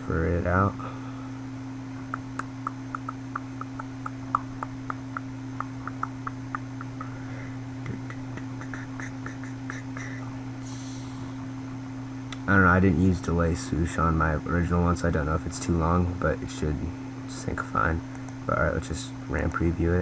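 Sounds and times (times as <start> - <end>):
low electrical hum: 0.0 - 20.0
faint irregular ticks: 2.1 - 7.2.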